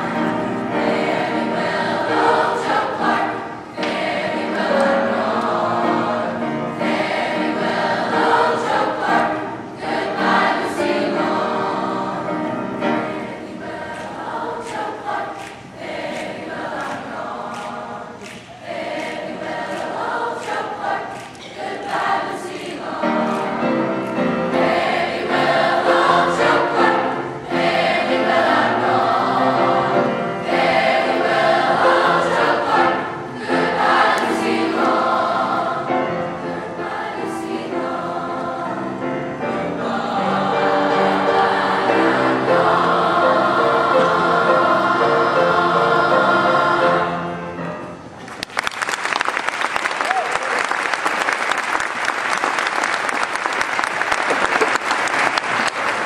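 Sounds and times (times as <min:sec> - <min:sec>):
youth choir singing in parts: 0:00.0 - 0:47.6.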